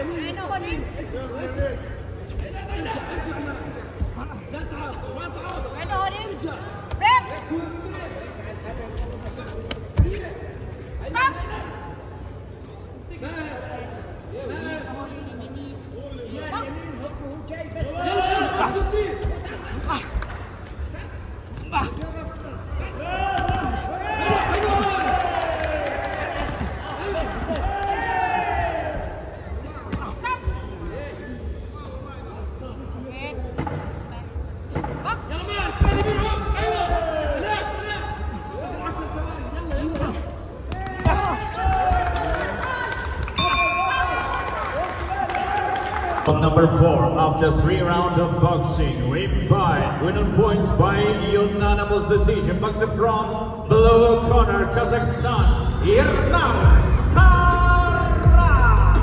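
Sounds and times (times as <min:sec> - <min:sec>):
voices calling out in echoing hall: 0:00.0 - 0:33.4, 0:34.6 - 0:59.0.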